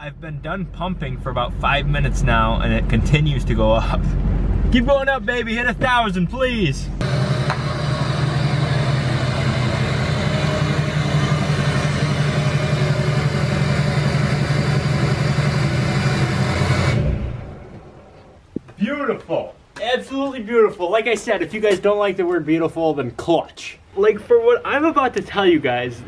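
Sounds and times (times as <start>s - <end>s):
diesel truck engine running: 0.0s - 18.2s.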